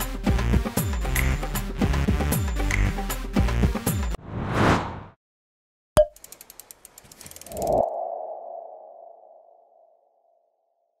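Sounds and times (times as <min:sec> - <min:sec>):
quick run of clicks: 0:06.1 - 0:07.8.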